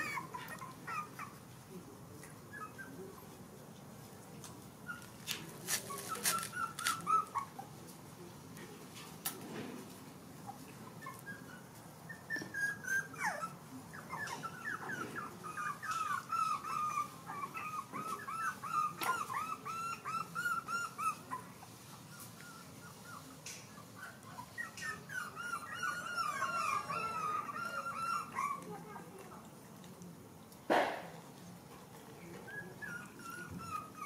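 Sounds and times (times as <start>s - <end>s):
puppies whimpering and whining: 0.0s - 1.5s, 2.2s - 3.4s, 4.8s - 7.8s, 10.4s - 28.9s, 32.2s - 34.0s.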